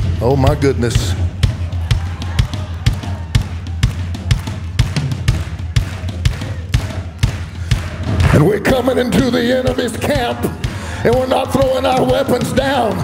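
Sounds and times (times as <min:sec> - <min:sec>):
tribal drum beat: 0:00.0 - 0:13.0.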